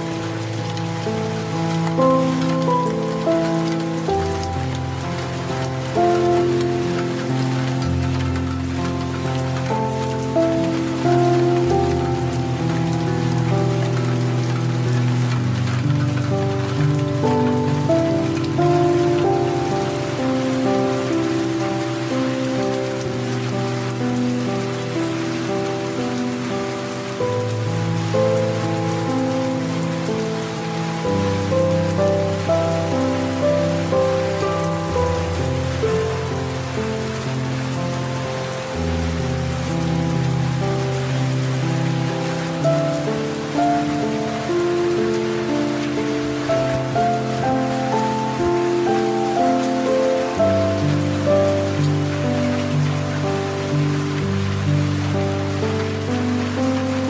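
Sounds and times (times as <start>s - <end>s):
soft slow music: 0.0s - 57.0s
steady rain falling: 0.0s - 57.0s.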